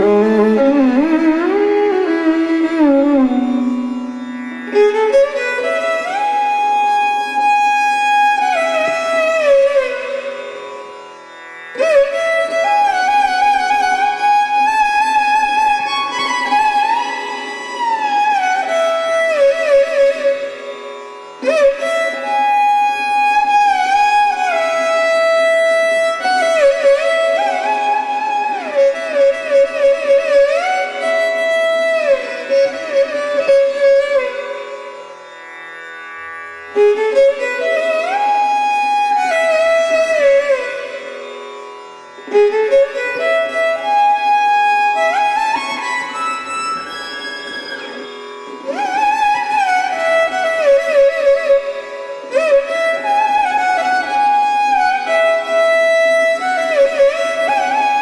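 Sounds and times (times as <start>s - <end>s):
violin sliding phrases: 0.0s - 58.0s.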